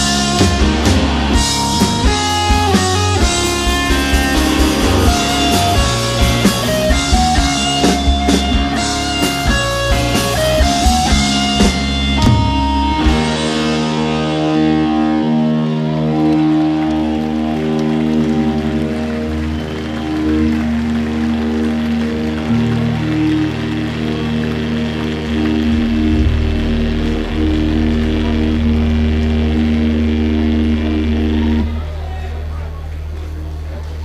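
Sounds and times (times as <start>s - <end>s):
electric guitars and bass droning chord: 0.0s - 34.0s.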